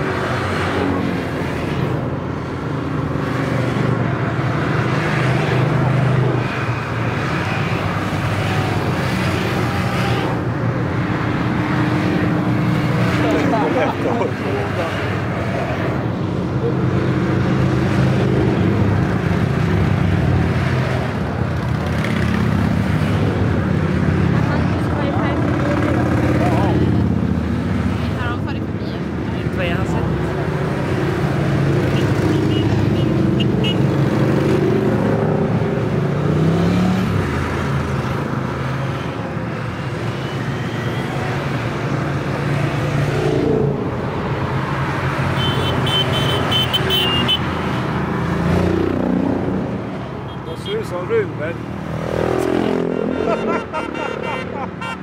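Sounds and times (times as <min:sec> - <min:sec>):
motorcycles riding past: 0:00.0 - 0:55.0.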